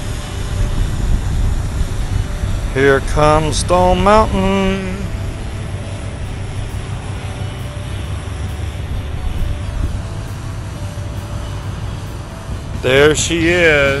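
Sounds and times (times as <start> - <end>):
faint hum: 0.0 - 14.0
wind buffeting microphone: 0.0 - 14.0.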